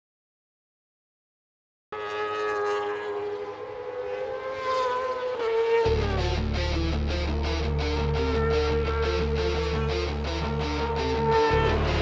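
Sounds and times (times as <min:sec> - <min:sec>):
motorcycle engine whining at high revs: 0:02.0 - 0:12.0
rock music with heavy bass: 0:05.9 - 0:12.0.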